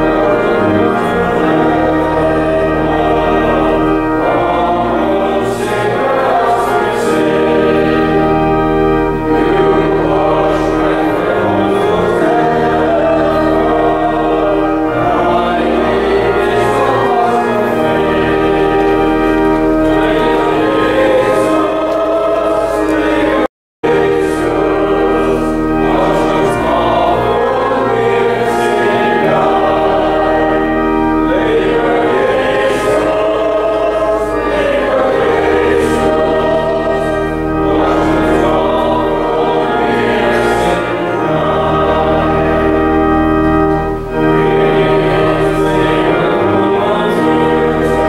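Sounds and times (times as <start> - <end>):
congregation singing a hymn: 0.0 - 48.0
organ playing held notes: 0.0 - 48.0.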